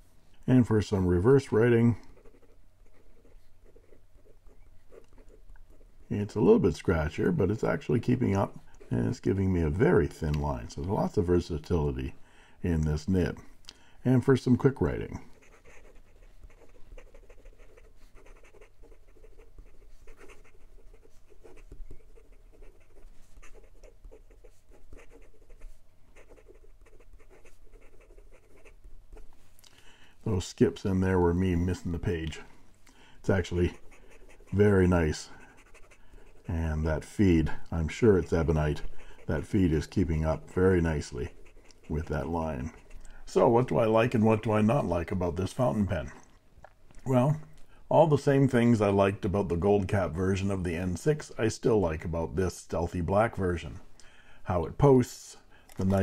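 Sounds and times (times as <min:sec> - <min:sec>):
faint low hum: 0:00.0 - 0:56.0
pen nib scratching on paper: 0:02.0 - 0:06.0, 0:15.2 - 0:29.4, 0:33.3 - 0:43.2.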